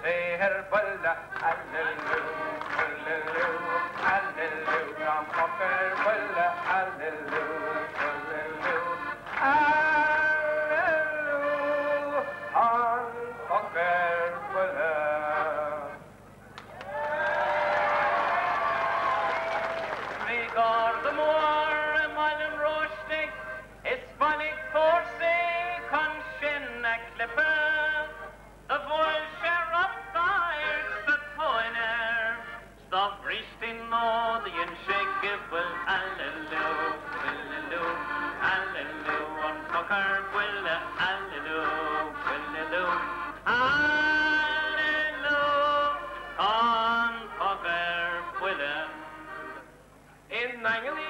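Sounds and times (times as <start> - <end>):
man singing into microphone: 0.0 - 16.0, 20.2 - 49.6, 50.3 - 51.0
piano accordion: 0.1 - 16.1, 20.3 - 32.8, 34.0 - 49.8
audience applauding: 1.4 - 10.3, 16.6 - 20.6.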